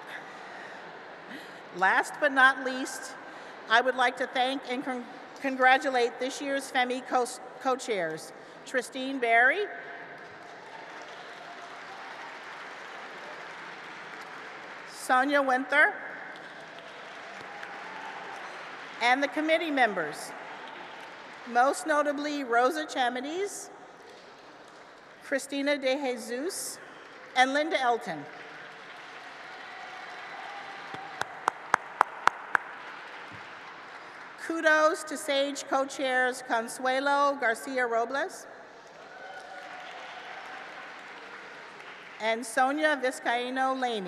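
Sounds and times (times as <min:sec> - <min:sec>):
audience applause: 0:10.2 - 0:15.0, 0:16.3 - 0:19.0, 0:20.4 - 0:21.5, 0:28.3 - 0:34.4, 0:38.8 - 0:42.2
sharp close claps: 0:28.3 - 0:34.4.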